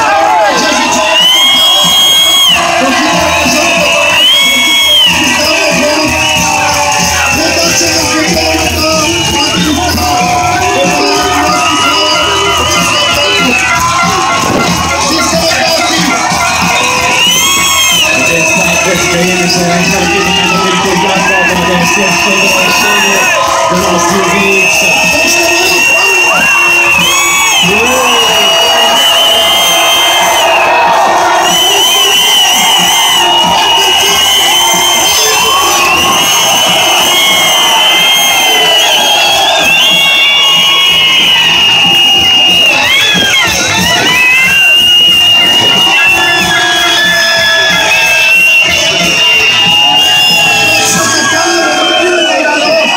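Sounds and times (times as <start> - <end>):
crowd cheering and shouting: 0.0 - 52.9
music playing: 0.0 - 52.9.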